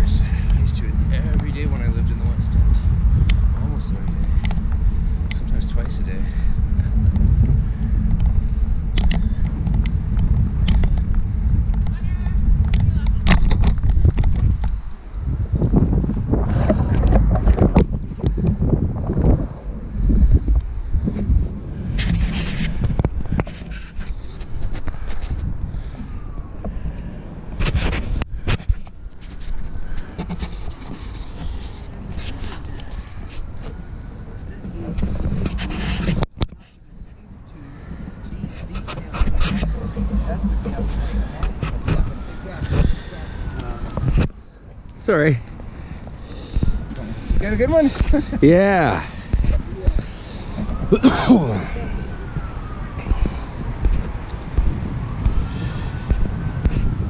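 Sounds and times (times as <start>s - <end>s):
wind buffeting microphone: 0.0s - 57.0s
indistinct voices: 29.8s - 54.6s.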